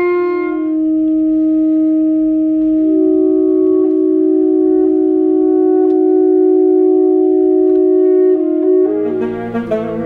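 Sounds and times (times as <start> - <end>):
saxophones holding long notes: 0.0 - 10.0.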